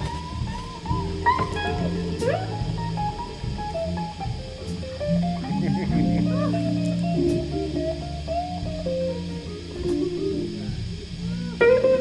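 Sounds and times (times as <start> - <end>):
bass guitar: 0.0 - 12.0
drums: 0.0 - 12.0
electric guitar lead: 0.0 - 12.0.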